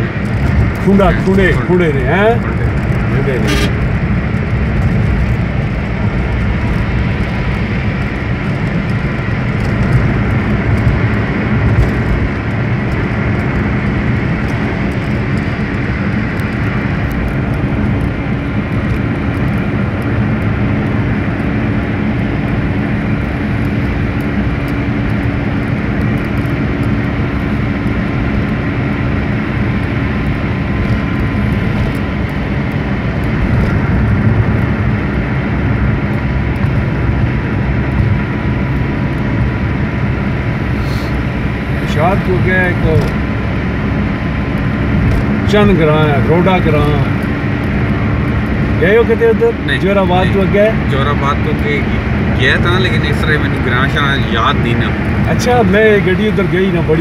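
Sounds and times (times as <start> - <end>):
car road and engine rumble: 0.0 - 57.0.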